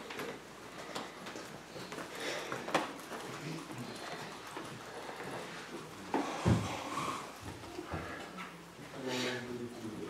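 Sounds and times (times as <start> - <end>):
faint murmur of voices: 0.8 - 10.0.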